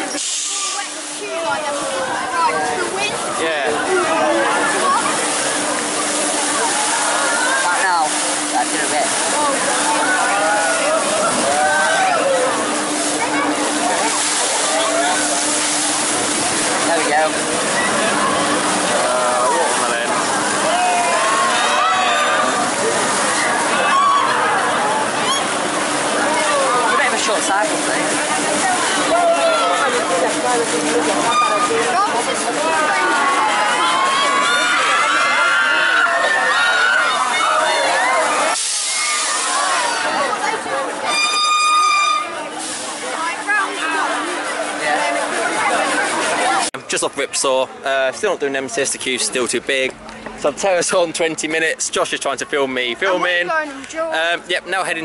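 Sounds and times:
rush of water jets: 0.0s - 55.0s
steady low hum: 0.8s - 34.4s
riders screaming and shouting: 9.8s - 12.6s, 20.5s - 25.6s, 32.9s - 40.2s.

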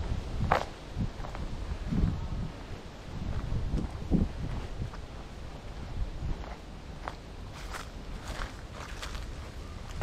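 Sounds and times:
footsteps on paved path: 0.0s - 10.0s.

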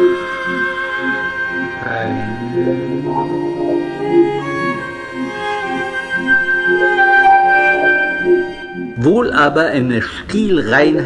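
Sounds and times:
bowed strings music: 0.0s - 9.8s.

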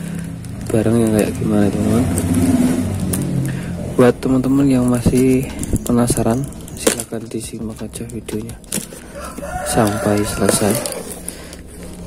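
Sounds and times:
motor vehicle engine running: 0.0s - 12.0s.

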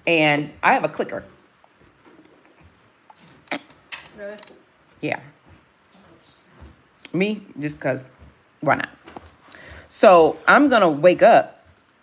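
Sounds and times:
tally counter clicks: 3.2s - 4.6s.

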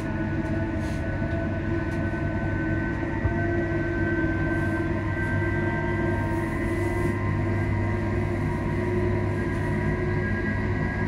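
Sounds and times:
constant electric whine: 0.0s - 11.0s
train running gear rumble: 0.0s - 11.0s.

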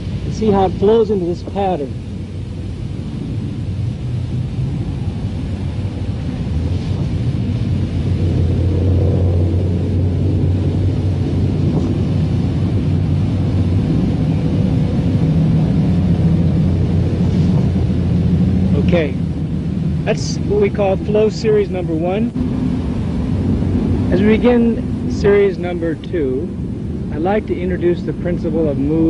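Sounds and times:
low steady rumble: 0.0s - 29.0s.

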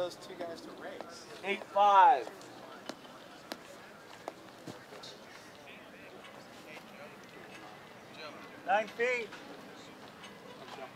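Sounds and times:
crowd chatter: 0.0s - 10.9s.

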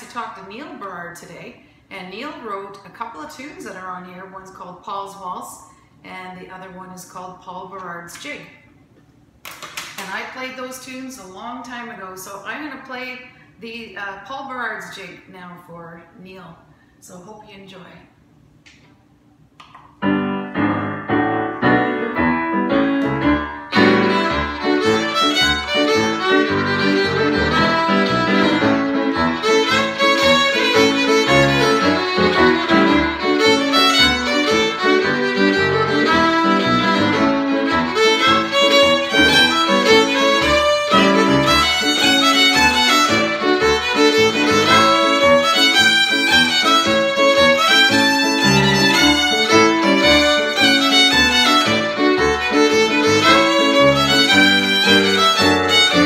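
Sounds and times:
fiddle playing a lively jig: 21.8s - 56.0s.

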